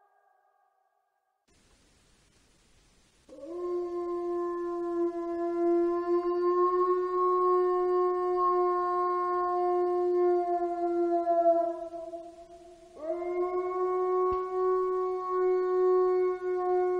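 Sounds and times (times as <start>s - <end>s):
wolf howling: 3.3s - 16.9s.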